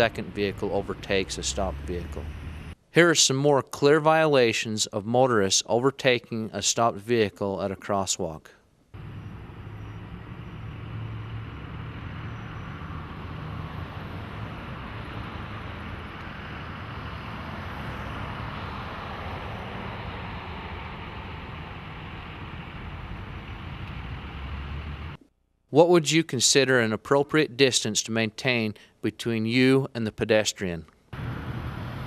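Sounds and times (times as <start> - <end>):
vehicles driving past: 0.0 - 2.8, 9.0 - 25.2, 31.2 - 32.0.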